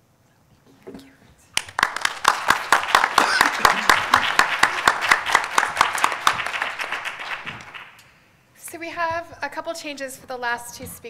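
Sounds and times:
audience applauding: 0:01.6 - 0:08.0.

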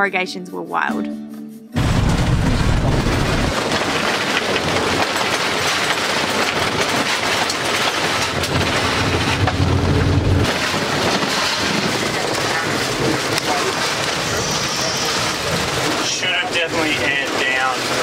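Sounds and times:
bus body rattling on gravel road: 0:01.8 - 0:18.0
road noise: 0:01.8 - 0:18.0.

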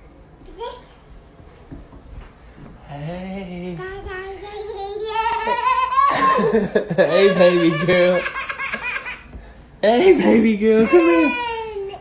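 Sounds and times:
baby laughing: 0:04.9 - 0:09.4, 0:10.2 - 0:12.0
baby squealing: 0:10.8 - 0:12.0.

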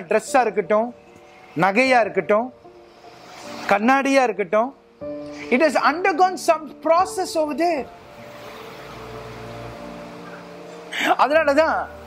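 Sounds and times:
soft sustained chords: 0:00.0 - 0:03.9, 0:04.8 - 0:12.0.

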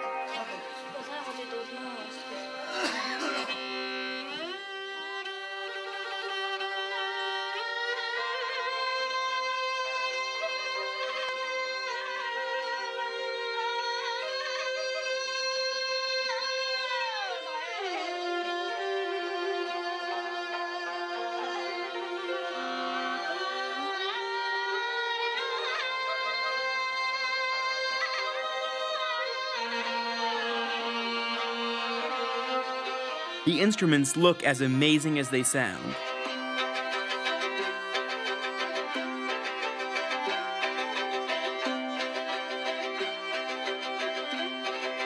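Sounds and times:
bowed fiddle long held notes: 0:00.0 - 0:34.4, 0:35.9 - 0:45.0.

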